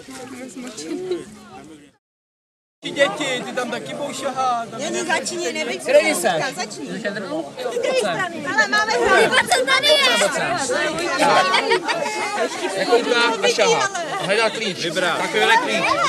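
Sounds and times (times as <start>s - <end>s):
children chattering excitedly: 0.0s - 2.0s, 2.8s - 16.0s.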